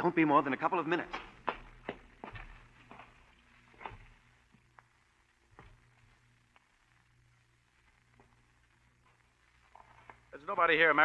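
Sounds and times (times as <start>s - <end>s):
footsteps walking away: 0.8s - 10.4s.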